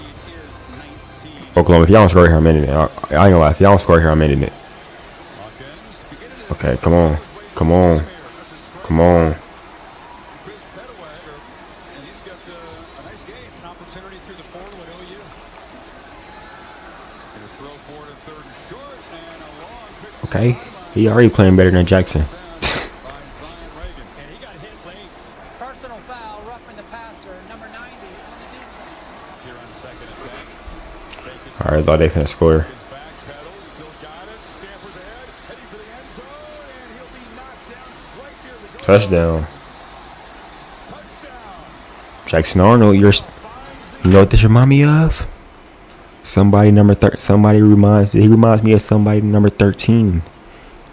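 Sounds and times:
faint commentator's voice: 0.0 - 45.4
announcers talking: 0.0 - 50.9
stadium crowd noise: 0.0 - 50.9
man saying touchdown loudly: 0.8 - 4.5, 17.4 - 25.2, 29.4 - 39.6, 40.8 - 45.3.

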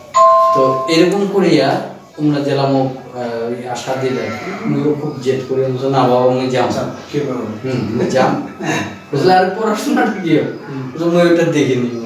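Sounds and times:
two-pitch chime tone: 0.0 - 1.4
man speaking: 0.4 - 12.0.

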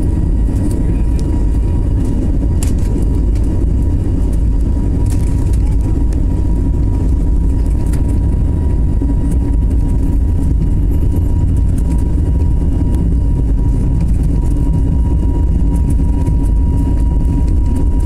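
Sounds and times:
jet engines low rumble: 0.0 - 18.0.

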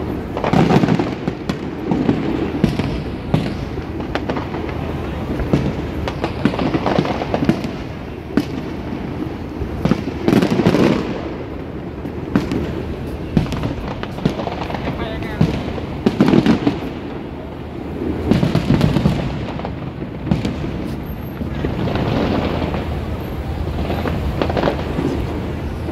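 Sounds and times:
fireworks bursting: 0.0 - 25.9.

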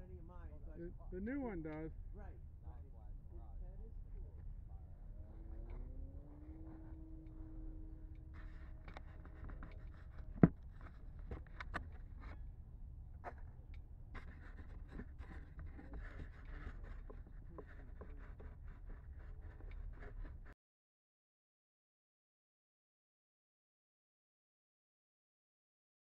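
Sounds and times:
faint steady hum: 0.0 - 20.6
model jet handling clicks and scrapes: 5.1 - 20.6.

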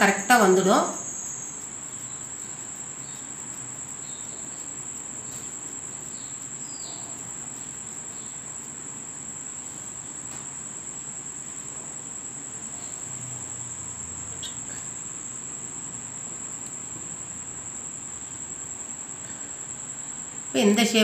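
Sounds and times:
high-pitched insect trill: 0.0 - 21.0.

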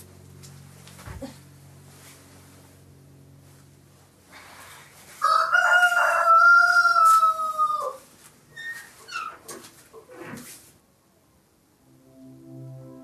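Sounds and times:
rooster crowing: 5.2 - 8.1.

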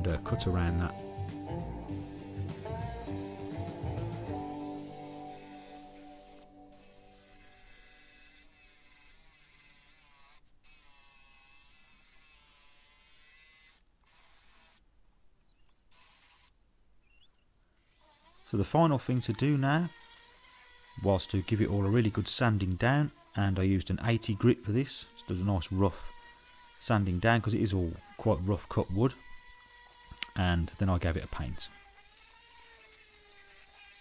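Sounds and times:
guitar background music: 0.0 - 7.2
cordless jigsaw cutting wood: 1.9 - 14.8, 15.9 - 16.6, 17.8 - 34.0.

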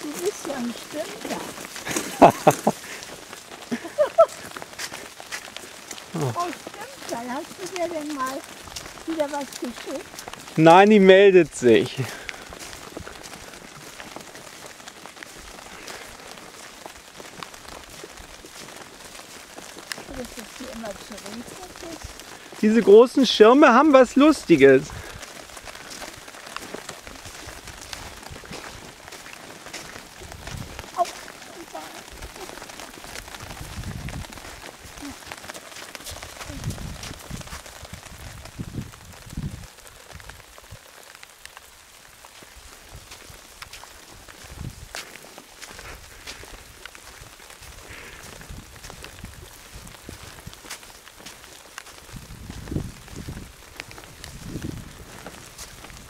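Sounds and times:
light rain on an umbrella: 0.0 - 56.0
wind on microphone: 30.2 - 31.1, 33.1 - 35.2, 36.1 - 40.8, 44.4 - 45.0, 45.8 - 50.6, 52.0 - 56.0.

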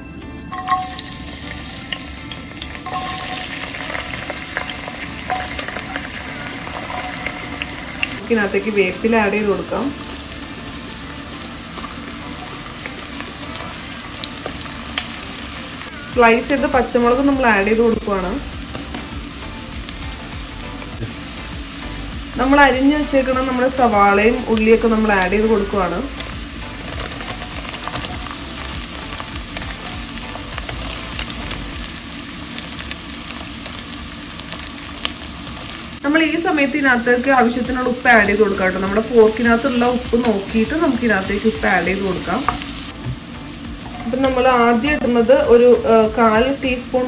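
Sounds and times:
food sizzling in hot oil: 0.5 - 47.0.

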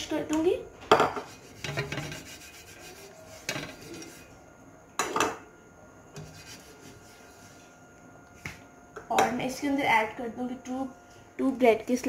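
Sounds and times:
basting brush rubbing pan: 1.2 - 4.4, 6.2 - 7.7.

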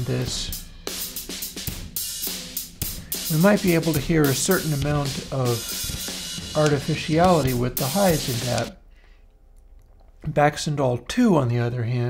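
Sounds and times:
drum kit playing: 0.0 - 8.8.

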